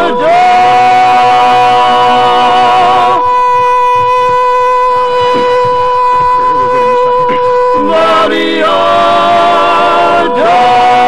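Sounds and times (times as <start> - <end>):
male voices singing a cappella: 0.0 - 11.0
steady pitched tone: 0.0 - 11.0.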